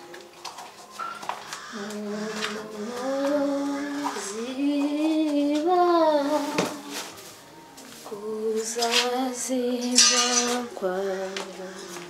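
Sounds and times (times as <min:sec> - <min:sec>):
music: 0:00.0 - 0:12.0
person singing slow melody: 0:01.4 - 0:12.0.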